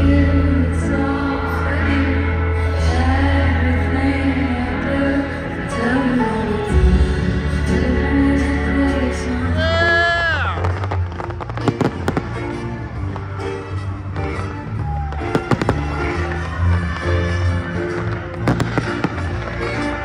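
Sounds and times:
live concert music: 0:00.0 - 0:20.0
fireworks bursting: 0:10.6 - 0:20.0.

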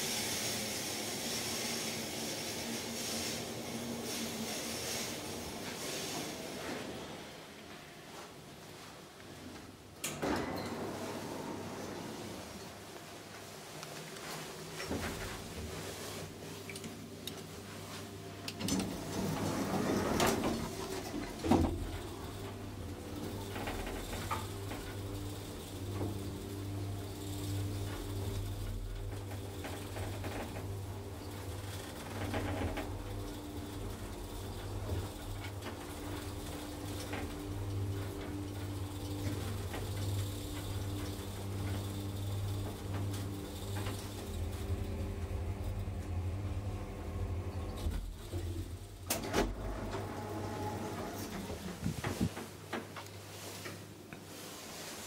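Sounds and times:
elevator low hum: 0:00.0 - 0:55.0.

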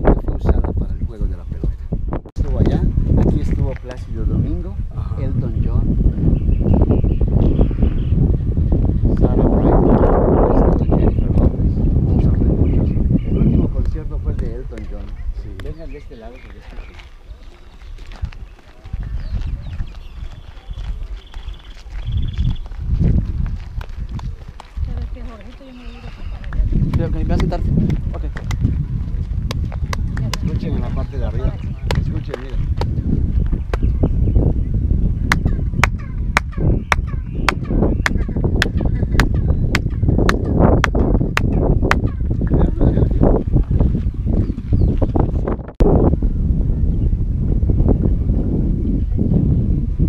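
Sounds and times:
microphone handling rumble: 0:00.0 - 0:50.0
wind on microphone: 0:00.0 - 0:50.0
faint voices: 0:24.4 - 0:26.8
hand claps: 0:26.5 - 0:28.7, 0:29.5 - 0:30.6
chirping echo off steps: 0:35.2 - 0:42.3.

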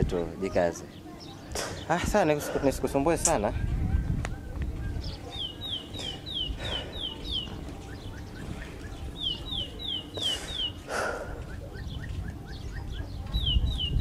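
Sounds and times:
bird whistling song: 0:04.3 - 0:14.0.

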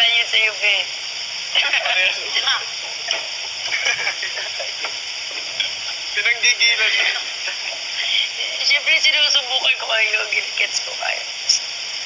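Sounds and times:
background hiss: 0:00.0 - 0:12.0
people laughing: 0:01.5 - 0:02.6, 0:03.4 - 0:04.9, 0:06.2 - 0:08.4
faint voices: 0:01.5 - 0:11.7.

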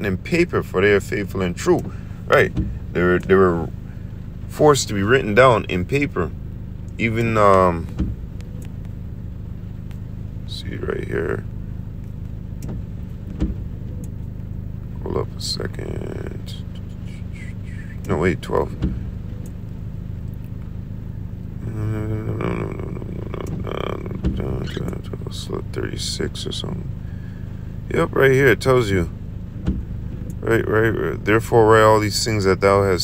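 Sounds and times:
low engine rumble idling: 0:00.0 - 0:33.0
man murmuring softly: 0:15.0 - 0:18.7, 0:21.6 - 0:26.9.

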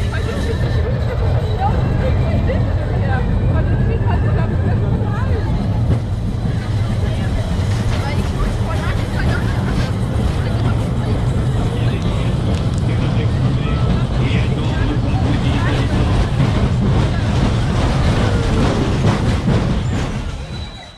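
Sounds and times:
riders chattering: 0:00.0 - 0:20.9
roller coaster cars rumbling: 0:00.0 - 0:20.9.

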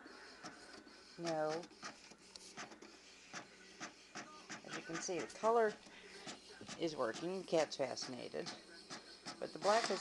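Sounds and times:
inkjet printer printing: 0:00.0 - 0:10.0.

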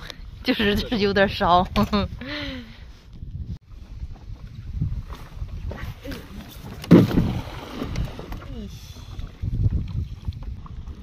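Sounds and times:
wind rumble on microphone: 0:00.0 - 0:11.0
net splashing into water: 0:06.8 - 0:08.4.

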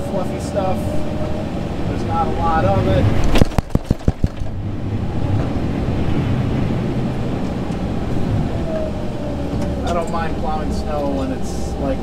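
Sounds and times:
tractor engine running under load: 0:03.2 - 0:05.8
sharp knocks: 0:03.3 - 0:04.6.

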